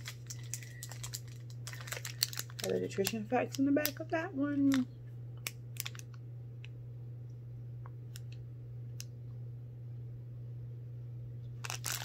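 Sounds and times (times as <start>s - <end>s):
plastic wrapper crinkling: 0.0s - 6.2s, 11.6s - 12.0s
steady low hum: 0.0s - 12.0s.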